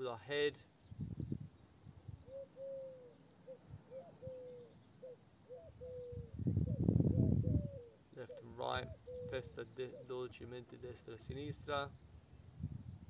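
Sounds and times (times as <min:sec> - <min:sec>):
bird cooing: 0:02.2 - 0:10.4.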